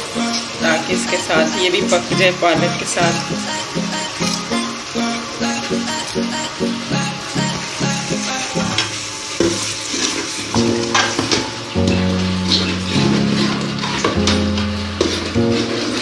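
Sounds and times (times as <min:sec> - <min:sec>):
background music with held notes: 0:00.0 - 0:16.0
food sizzling: 0:00.0 - 0:16.0.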